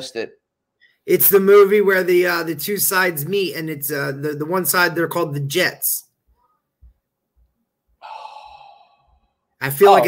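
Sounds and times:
person sighing: 0:08.0 - 0:09.1.

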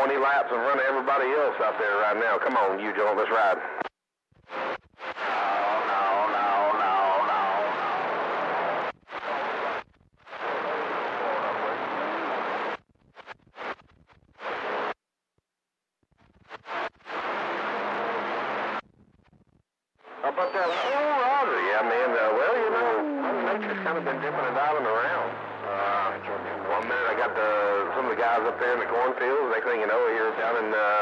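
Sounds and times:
faint garbled radio voices: 0:00.0 - 0:13.8, 0:20.0 - 0:31.0
radio static bursts: 0:00.1 - 0:15.0, 0:16.1 - 0:31.0.

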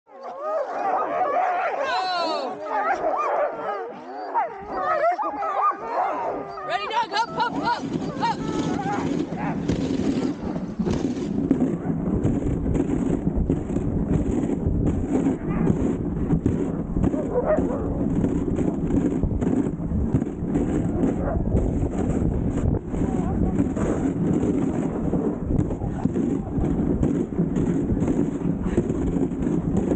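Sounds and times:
sled dogs barking and howling: 0:00.1 - 0:13.0, 0:15.1 - 0:19.7, 0:20.5 - 0:22.1, 0:22.9 - 0:29.9
wind buffeting microphone: 0:00.5 - 0:29.9.

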